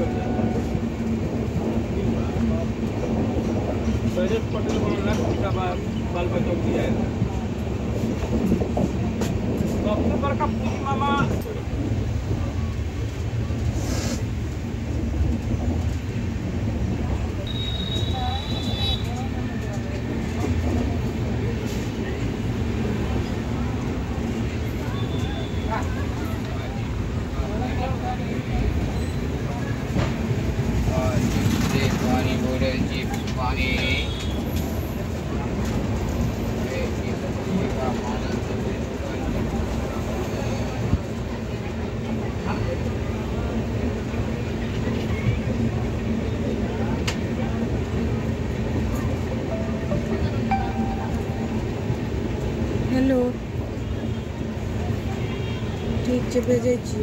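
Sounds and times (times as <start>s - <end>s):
passengers' voices: 0.0s - 57.0s
train rumbling: 0.0s - 57.0s.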